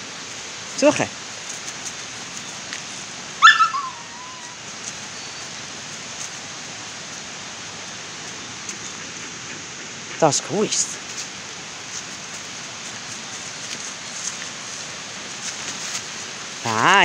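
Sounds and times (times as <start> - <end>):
steady hiss: 0.0 - 17.0
dog whining: 3.4 - 4.6.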